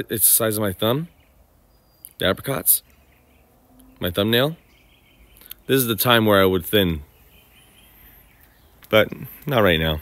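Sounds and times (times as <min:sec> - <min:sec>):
man speaking: 0:05.7 - 0:07.1, 0:08.9 - 0:10.0.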